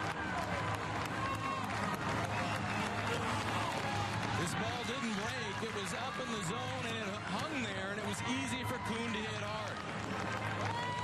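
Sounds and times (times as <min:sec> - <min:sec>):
crowd voices din: 0:00.0 - 0:11.0.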